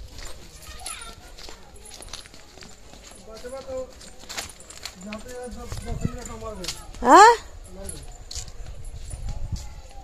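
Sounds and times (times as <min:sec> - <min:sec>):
footsteps on packed earth: 0:00.0 - 0:10.0.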